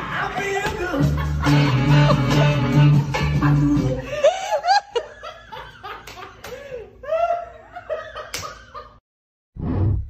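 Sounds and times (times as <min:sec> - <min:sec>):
person laughing: 0:00.8 - 0:02.8, 0:03.4 - 0:09.0.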